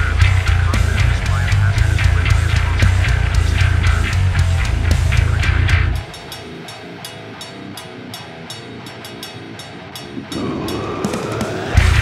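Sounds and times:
deathcore metal music: 0:00.0 - 0:12.0.

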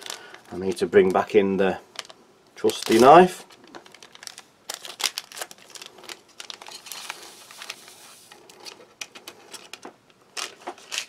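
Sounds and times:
foil sachet crinkling: 0:00.0 - 0:11.0.

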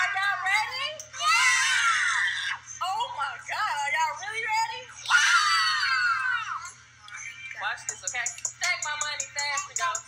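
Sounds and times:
child yelling: 0:01.2 - 0:02.6.

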